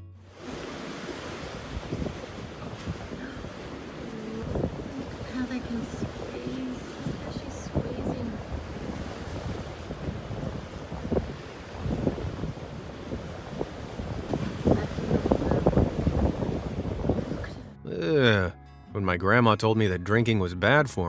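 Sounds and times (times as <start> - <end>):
surf washing on beach: 0.3 - 17.5
wind buffeting microphone: 0.4 - 17.8.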